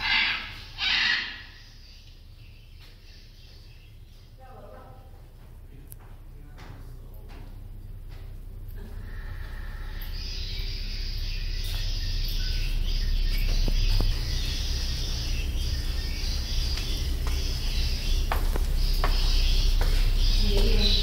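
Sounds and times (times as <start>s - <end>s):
low rumble: 0.0s - 21.0s
insects chirping: 8.2s - 21.0s.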